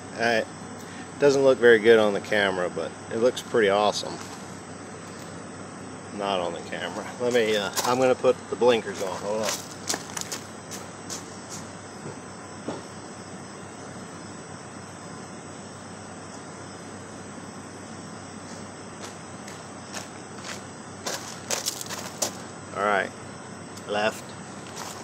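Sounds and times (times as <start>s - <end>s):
low outdoor hum: 0.0s - 25.0s.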